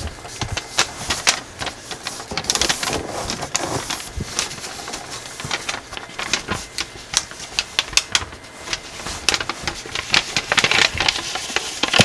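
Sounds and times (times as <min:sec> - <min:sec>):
foil paper crinkling: 0:00.0 - 0:12.0.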